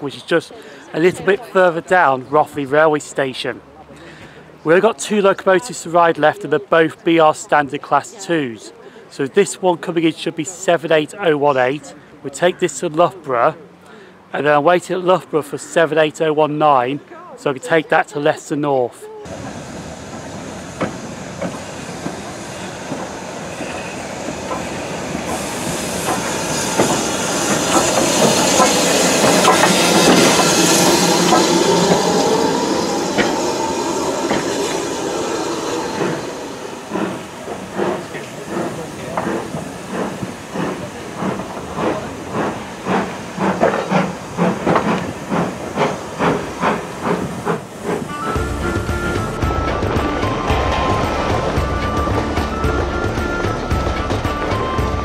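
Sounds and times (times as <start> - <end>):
loud hiss of steam: 19.3 - 55.0
steam locomotive exhaust beats: 19.3 - 55.0.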